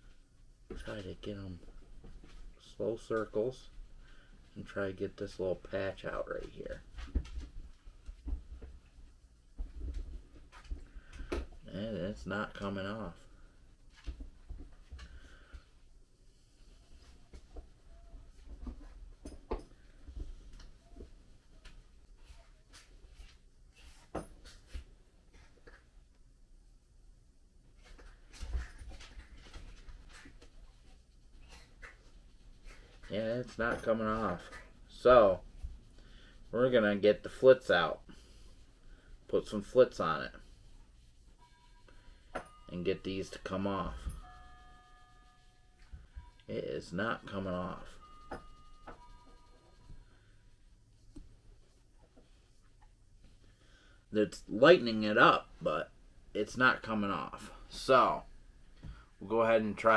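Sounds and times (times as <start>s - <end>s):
cloth rubbing on blade: 39.4s - 46.4s.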